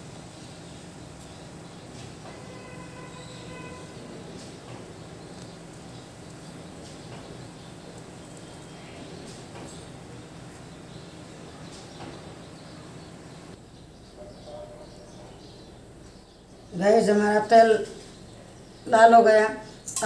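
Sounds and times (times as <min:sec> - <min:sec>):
gas stove burner hissing: 0:00.0 - 0:16.2.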